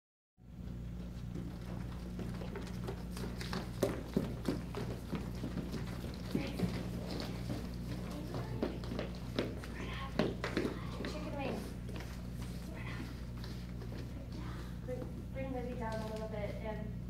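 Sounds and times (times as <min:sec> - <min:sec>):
steady low hum: 0:00.4 - 0:17.0
footsteps on hardwood floor: 0:00.6 - 0:16.4.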